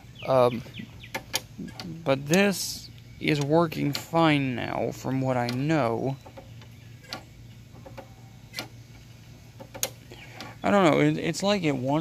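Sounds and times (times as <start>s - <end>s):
low steady hum: 0.0s - 12.0s
mower handle clicks: 1.0s - 2.4s, 3.3s - 4.2s, 5.4s - 6.5s, 9.6s - 10.5s.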